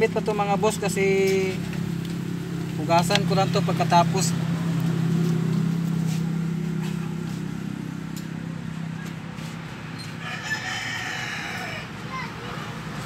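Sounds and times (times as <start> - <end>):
low engine hum: 0.0 - 13.0
rooster crowing: 10.0 - 12.3.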